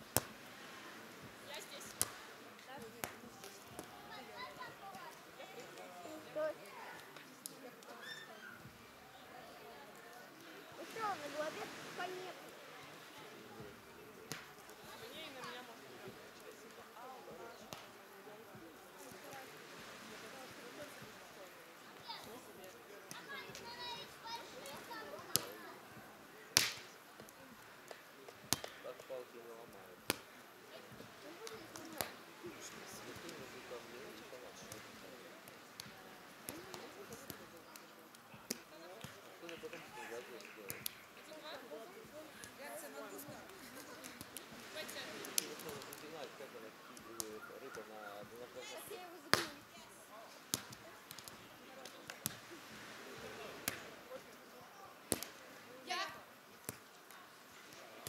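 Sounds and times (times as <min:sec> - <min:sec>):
faint voices of players: 0:00.6 - 0:58.0
hands hitting a volleyball: 0:01.9 - 0:04.0, 0:14.3 - 0:14.7, 0:17.7 - 0:17.9, 0:25.2 - 0:25.5, 0:26.6 - 0:28.8, 0:30.1 - 0:30.3, 0:35.5 - 0:39.8, 0:40.4 - 0:41.0, 0:49.3 - 0:49.6, 0:50.5 - 0:52.4, 0:53.6 - 0:53.9, 0:55.1 - 0:55.4, 0:56.6 - 0:57.2.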